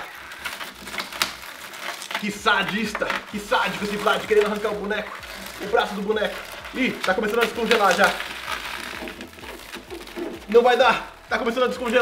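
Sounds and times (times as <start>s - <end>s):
frozen rubber toy clicking and crackling: 0.0s - 12.0s.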